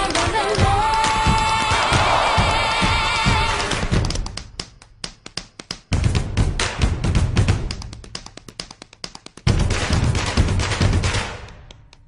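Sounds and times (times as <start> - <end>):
tap-dance taps: 3.6 - 12.0.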